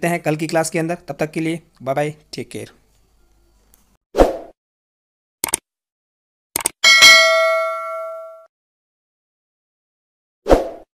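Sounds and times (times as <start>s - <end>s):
notification bell ding: 6.8s - 8.5s.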